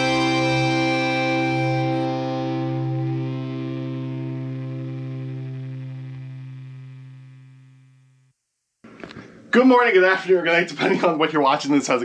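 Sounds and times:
electric guitar chord ringing: 0.0 - 8.3.

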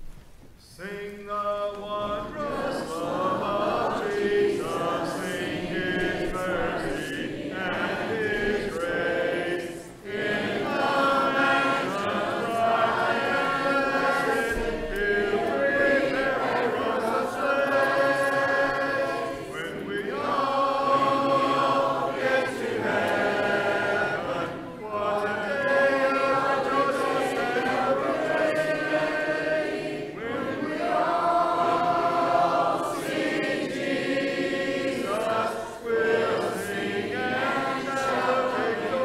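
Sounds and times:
congregation singing a hymn: 0.6 - 39.0.

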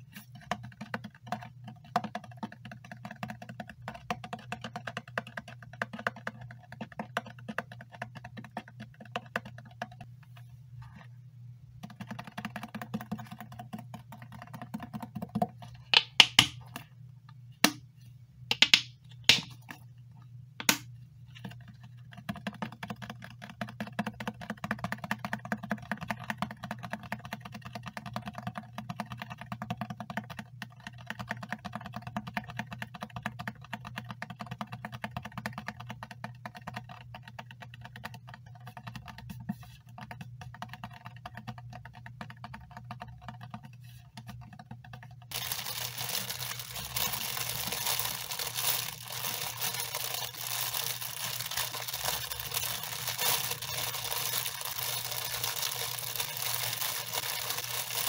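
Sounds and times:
fingernails tapping plastic bottle: 11.9 - 16.6.

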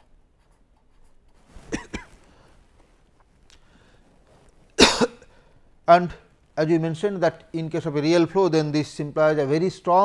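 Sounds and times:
man coughing: 1.7 - 2.1, 4.8 - 5.3.

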